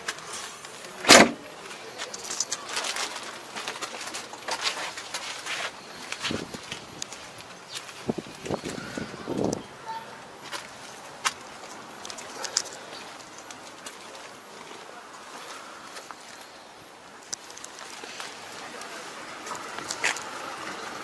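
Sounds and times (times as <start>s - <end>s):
sharp loud knock: 1.1s - 1.4s
indistinct voices: 17.4s - 21.0s.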